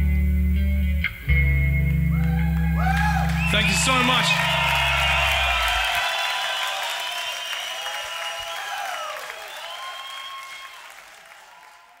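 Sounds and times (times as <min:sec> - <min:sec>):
crowd applauding: 0:02.1 - 0:12.0.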